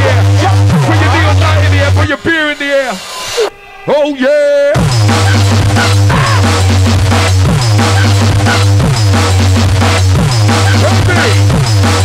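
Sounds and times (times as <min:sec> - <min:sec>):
drum and bass music: 0:00.0 - 0:03.5, 0:04.7 - 0:12.0
person shouting over music: 0:06.0 - 0:06.6.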